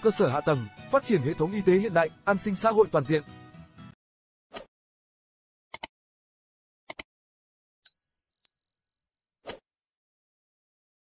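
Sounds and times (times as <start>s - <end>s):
high bell ding: 7.9s - 9.4s.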